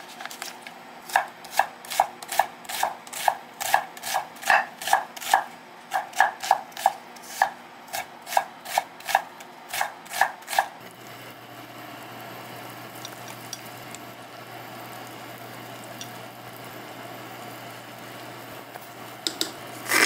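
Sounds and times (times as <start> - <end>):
knife chopping on wooden board: 1.1 - 10.7.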